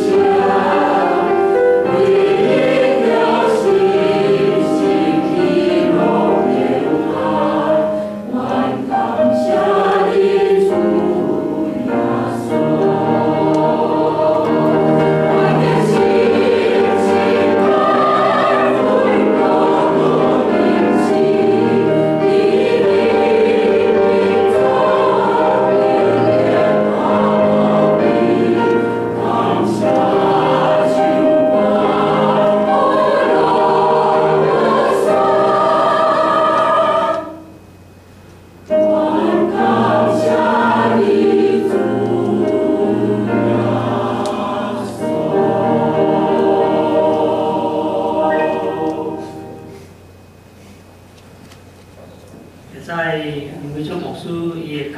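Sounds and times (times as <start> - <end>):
church choir singing a hymn: 0.0 - 37.7, 38.7 - 50.0.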